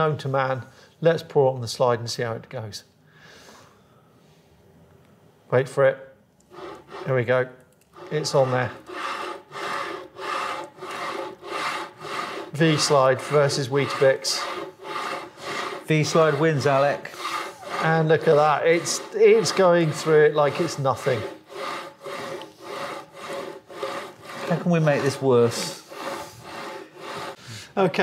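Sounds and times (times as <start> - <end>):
carriage wheels rasping along rail: 6.5 - 7.2, 8.0 - 27.4.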